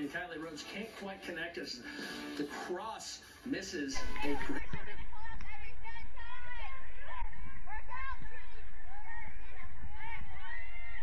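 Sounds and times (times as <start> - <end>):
steady low rumble: 4.0 - 11.0.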